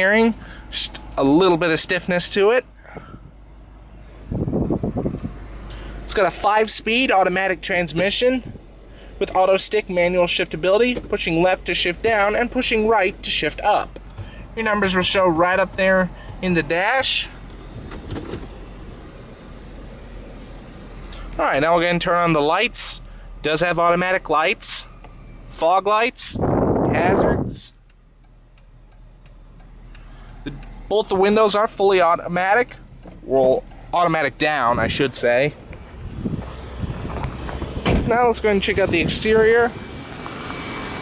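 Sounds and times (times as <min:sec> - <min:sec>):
car engine idling: 0:00.0 - 0:41.0
wind rumble on microphone: 0:04.2 - 0:05.5, 0:26.4 - 0:27.7, 0:35.7 - 0:39.8
microphone handling noise: 0:35.6 - 0:38.2.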